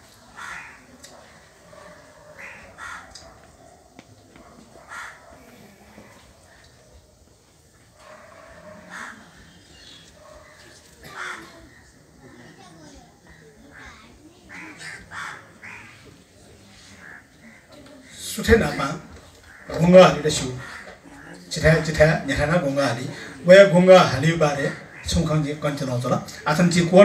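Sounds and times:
crow cawing: 0.4 - 0.9, 2.4 - 3.2, 4.9 - 5.2, 8.8 - 9.4, 11.0 - 11.7, 13.7 - 16.0, 17.0 - 17.8, 20.6 - 21.4, 24.7 - 25.2.

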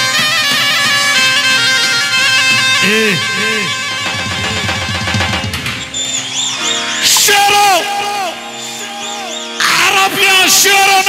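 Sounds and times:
electronic keyboard dance music: 0.0 - 11.0.

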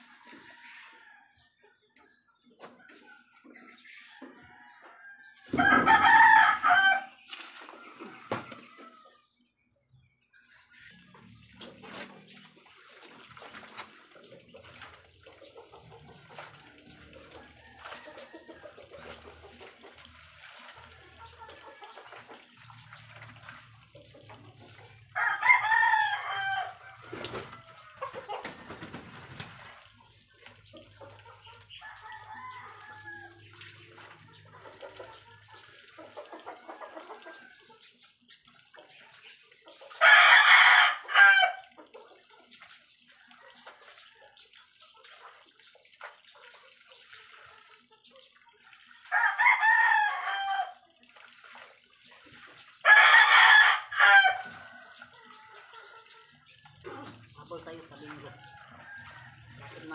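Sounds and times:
rooster crowing: 4.7 - 7.1, 25.2 - 26.8, 49.1 - 50.8, 52.9 - 54.6
laundry splashing in a basin: 5.4 - 9.3, 10.3 - 59.9.

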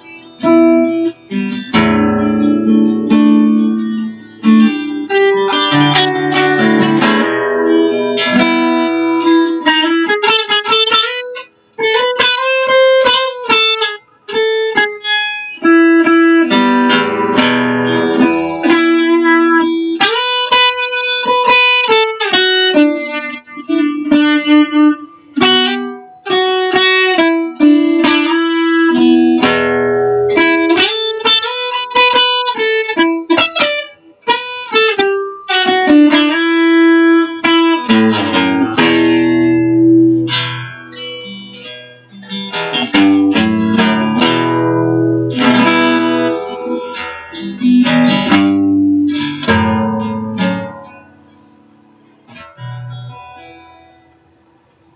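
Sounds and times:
acoustic guitar strumming: 0.0 - 54.9
electric guitar lead melody: 0.0 - 54.9.

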